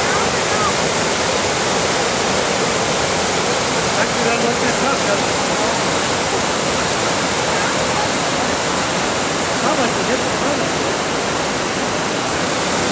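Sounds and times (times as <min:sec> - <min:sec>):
waterfall pouring into pool: 0:00.0 - 0:12.9.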